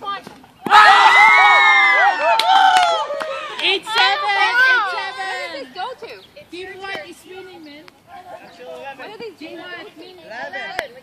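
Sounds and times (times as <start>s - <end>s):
teenagers cheering: 0.6s - 5.8s
teenagers laughing: 2.1s - 6.2s.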